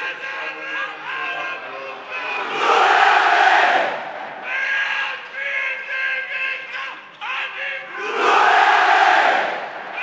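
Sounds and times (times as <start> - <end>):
crowd shouting and cheering: 0.0 - 10.0
crowd chanting in unison: 2.2 - 4.5, 7.9 - 10.0.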